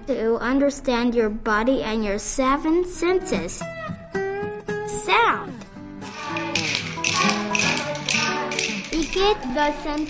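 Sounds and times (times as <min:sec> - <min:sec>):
instrumental music: 0:03.9 - 0:10.0
wooden rhythm sticks tapping: 0:06.0 - 0:10.0.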